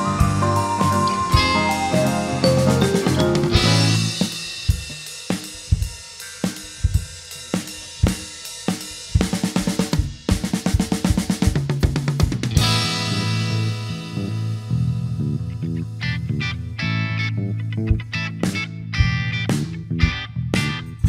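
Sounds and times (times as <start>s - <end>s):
full rock band playing: 0.0s - 5.4s, 12.3s - 20.8s
rock drum kit: 0.0s - 21.0s.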